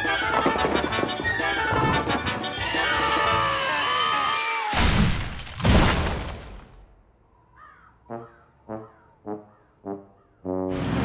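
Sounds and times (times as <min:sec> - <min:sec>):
buildings collapsing crash: 0:04.7 - 0:06.9
crow caw: 0:07.5 - 0:08.4.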